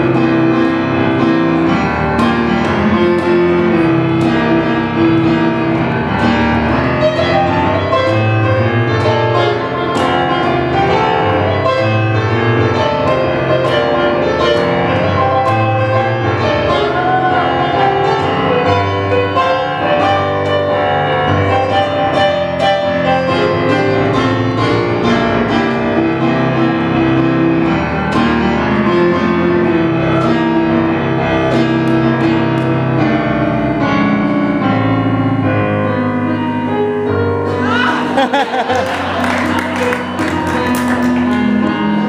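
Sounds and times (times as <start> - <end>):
piano ringing chords: 0.0 - 42.0.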